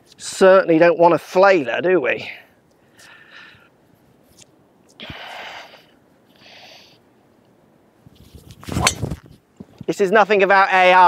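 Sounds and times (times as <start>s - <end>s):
golf club swing swoosh: 8.2s - 9.3s
driver striking golf ball: 8.7s - 9.2s.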